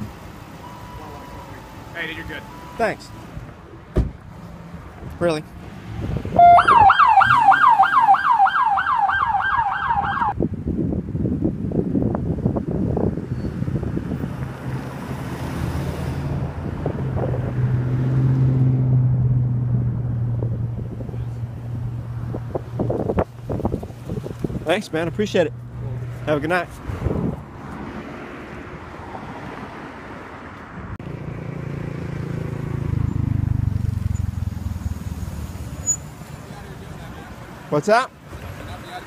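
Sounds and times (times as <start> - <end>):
vehicle engine humming: 0.0 - 10.4, 11.8 - 39.0
siren yelping: 0.6 - 2.9, 6.4 - 10.4.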